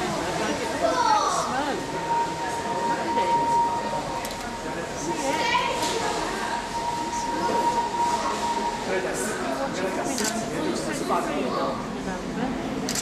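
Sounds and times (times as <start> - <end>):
crowd chatter: 0.0 - 13.0
steady high tone: 0.6 - 9.8.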